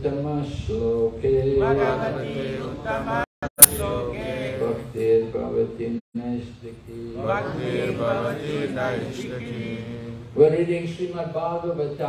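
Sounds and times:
voices chanting: 1.6s - 5.0s, 6.9s - 10.3s.

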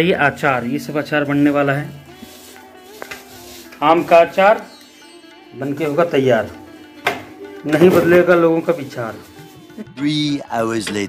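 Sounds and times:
man's voice: 0.0s - 2.4s, 3.7s - 4.8s, 5.6s - 6.7s, 7.6s - 11.0s
faint background music: 0.0s - 11.0s.

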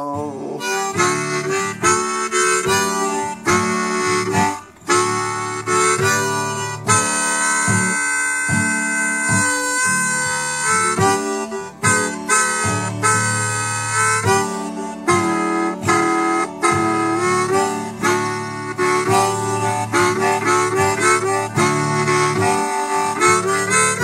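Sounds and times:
blues harmonica: 0.0s - 24.0s
strummed acoustic guitar: 0.0s - 24.0s.

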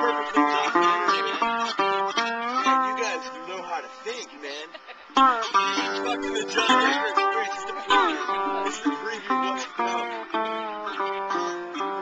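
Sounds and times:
acoustic guitar plucked: 0.0s - 12.0s.

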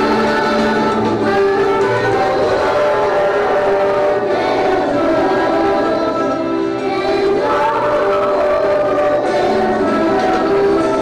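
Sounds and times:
children's choir singing: 0.0s - 11.0s
musical accompaniment: 0.0s - 11.0s.

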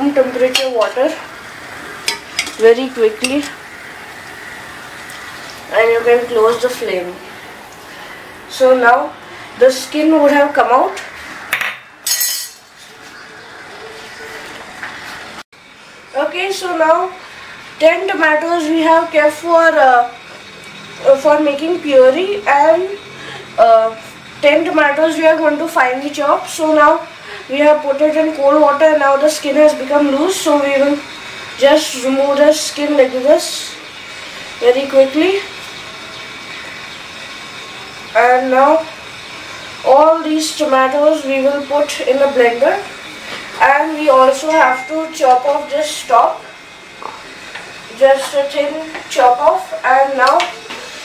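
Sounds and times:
faint hum: 0.0s - 51.0s
kitchen room noise: 0.0s - 51.0s
steel cookware clinking: 0.4s - 1.0s, 2.0s - 3.6s, 11.6s - 12.8s, 44.4s - 45.3s.

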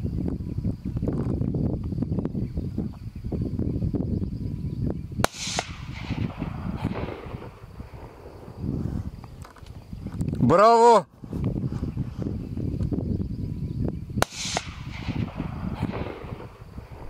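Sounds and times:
steady low rumble: 0.0s - 10.4s, 11.3s - 17.0s
rifle shot with echo: 5.2s - 8.7s, 14.2s - 17.0s.

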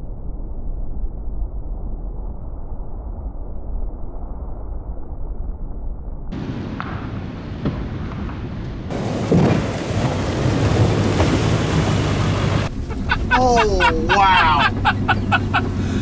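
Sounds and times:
water and debris falling: 8.9s - 15.7s
diesel engine rumble: 8.9s - 16.0s
water spraying: 8.9s - 16.0s.

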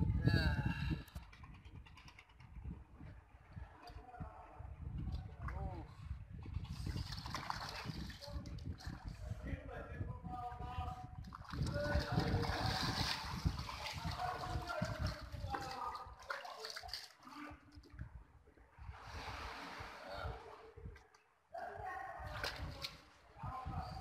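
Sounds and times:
muddy water splashing: 6.6s - 8.5s, 11.2s - 17.7s, 22.2s - 23.2s.

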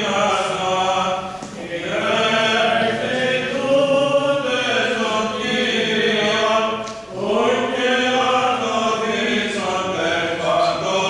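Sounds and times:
voices chanting long held notes: 0.0s - 11.0s.

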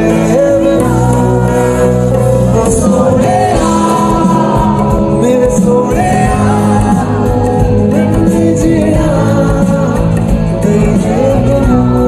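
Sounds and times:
live band drums and accompaniment: 0.0s - 12.0s
man singing into a microphone: 0.0s - 12.0s.

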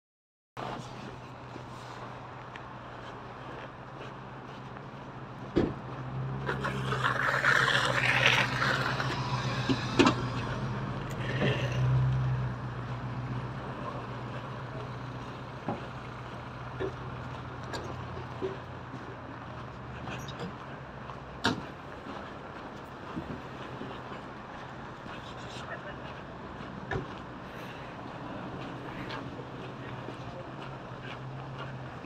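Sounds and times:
vehicle engine hum: 0.6s - 32.0s.

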